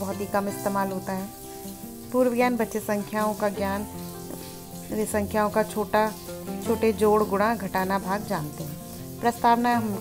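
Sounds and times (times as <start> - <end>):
woman speaking: 0.0 - 1.4, 2.2 - 3.9, 4.9 - 10.0.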